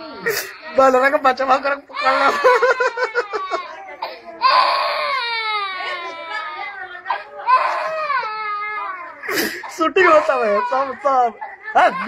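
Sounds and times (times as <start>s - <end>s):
toddler crying: 1.9s - 9.3s.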